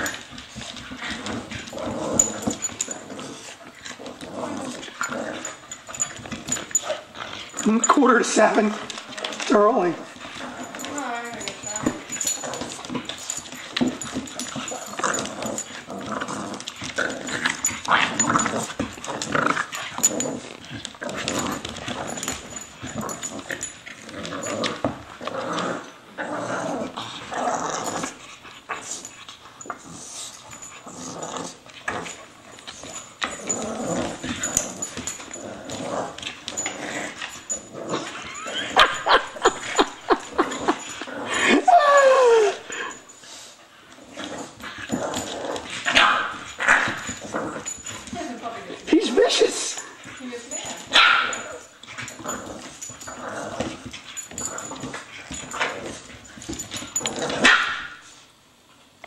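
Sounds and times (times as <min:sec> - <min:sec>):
dogs growling: 0:00.0 - 0:58.0
dogs yelping: 0:37.6 - 0:43.0.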